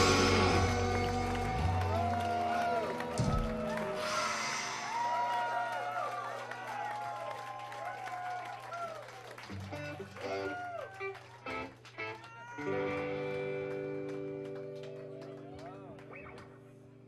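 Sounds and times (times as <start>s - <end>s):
electric guitar and bass notes: 0.0s - 4.8s, 9.5s - 17.0s.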